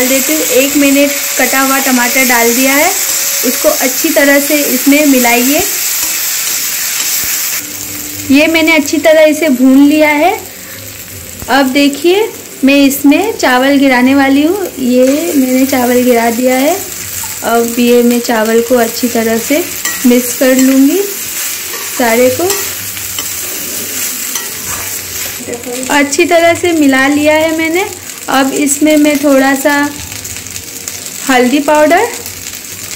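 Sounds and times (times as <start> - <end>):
onions sizzling in hot oil: 0.0 - 32.9
metal spoon scraping pan: 19.7 - 25.4.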